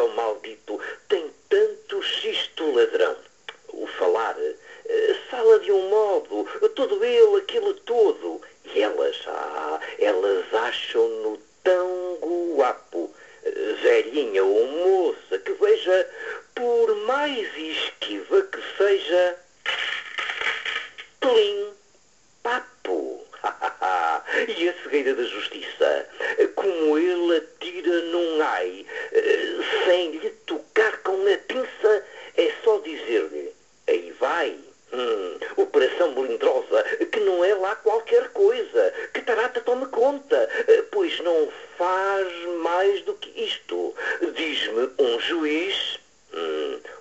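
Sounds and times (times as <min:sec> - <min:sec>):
man reciting a poem: 0:00.0 - 0:20.2, 0:21.0 - 0:21.8, 0:22.4 - 0:47.0.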